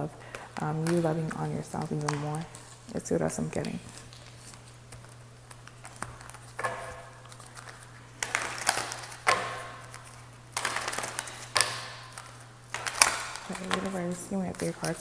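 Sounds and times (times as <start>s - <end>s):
steady low hum: 0.0s - 15.0s
cards being shuffled: 0.3s - 15.0s.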